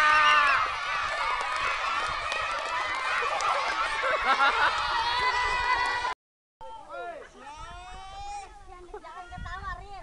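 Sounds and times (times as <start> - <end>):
crowd cheering and shouting: 0.0 - 8.5.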